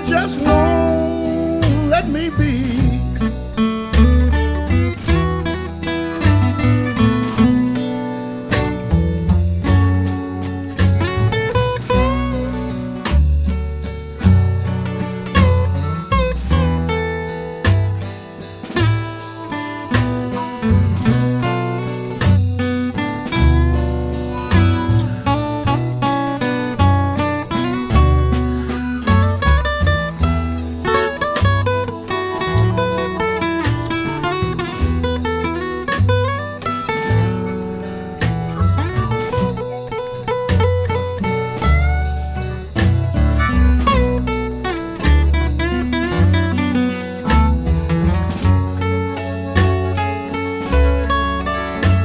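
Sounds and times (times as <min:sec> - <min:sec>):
blues band playing instrumental: 0:00.0 - 0:52.0.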